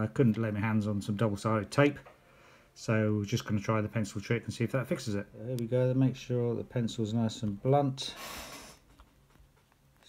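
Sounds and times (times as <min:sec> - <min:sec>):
breath through the nose: 0:08.2 - 0:08.9.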